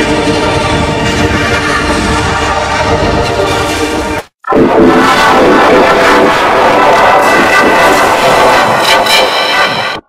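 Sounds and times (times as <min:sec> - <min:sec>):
distorted sustained tones: 0:00.0 - 0:10.0
harsh noise: 0:00.0 - 0:10.0.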